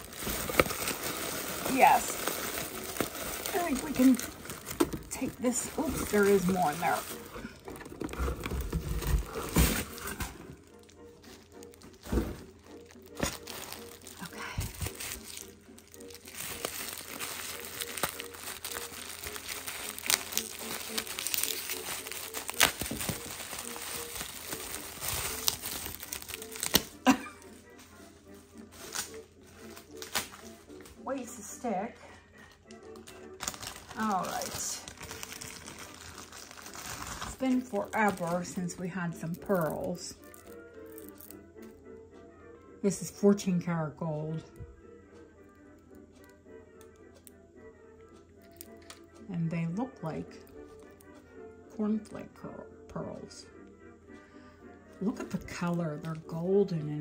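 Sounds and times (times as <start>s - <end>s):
bubble wrap crinkling: 0.0s - 31.0s, 32.6s - 41.8s, 48.4s - 49.1s.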